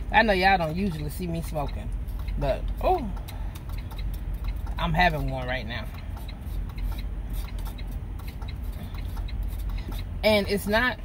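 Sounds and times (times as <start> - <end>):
low steady hum: 0.0 - 11.0
rapid clicking from truck: 0.0 - 11.0.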